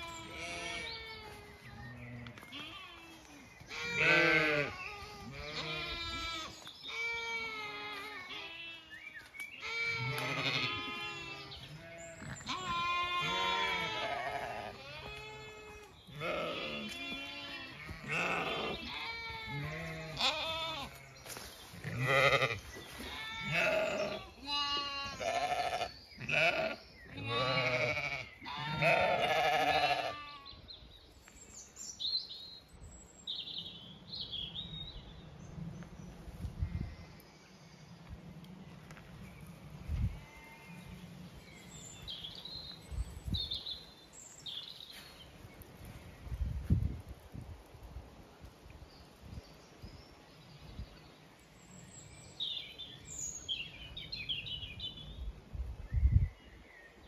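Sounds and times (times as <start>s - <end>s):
sheep bleating: 0.0s - 1.3s, 2.0s - 8.9s, 9.6s - 21.0s, 21.8s - 30.5s.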